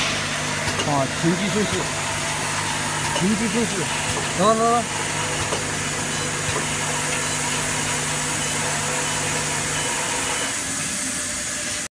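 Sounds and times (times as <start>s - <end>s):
machine mechanical hum: 0.0s - 11.9s.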